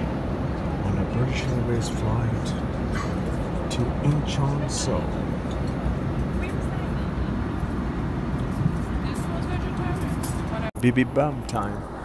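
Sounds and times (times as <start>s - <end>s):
airliner cabin drone: 0.0s - 12.0s.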